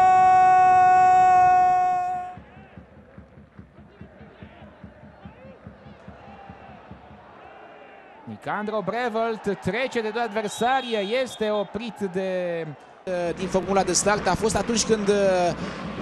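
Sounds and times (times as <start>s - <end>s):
faint stadium crowd noise: 0.0s - 16.0s.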